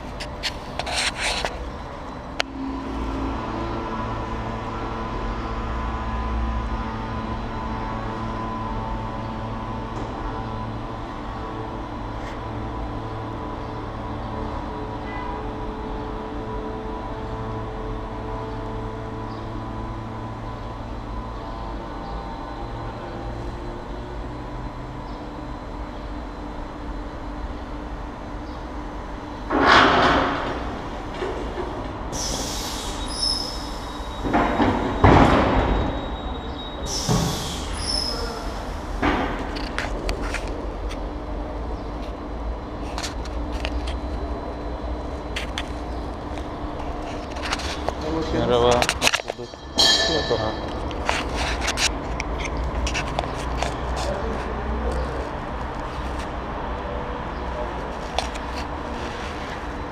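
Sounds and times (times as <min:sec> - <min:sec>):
air bursts and hisses: 0:32.1 - 0:34.1, 0:36.8 - 0:38.9
metal clanks and clatter: 0:46.9 - 0:54.1.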